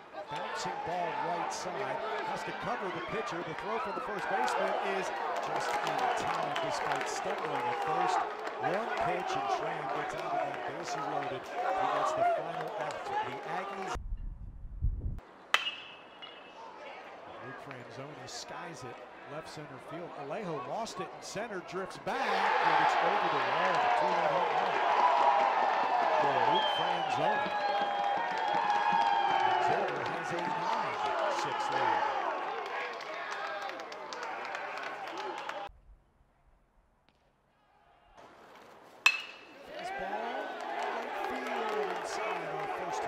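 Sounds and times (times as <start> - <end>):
players cheering and shouting: 0.0 - 14.0, 16.6 - 35.7, 39.5 - 43.0
metal bat hitting ball: 15.5 - 16.5, 39.0 - 39.6.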